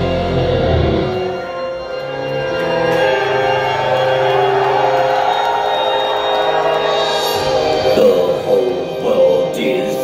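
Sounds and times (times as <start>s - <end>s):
sustained organ-like keyboard chords: 0.0s - 10.0s.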